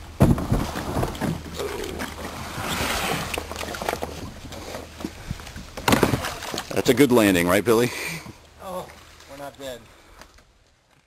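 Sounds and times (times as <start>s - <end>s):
person climbing out of kayak: 0.2s - 6.8s
plastic kayak knocking and scraping: 0.2s - 7.1s
water sloshing: 0.4s - 10.1s.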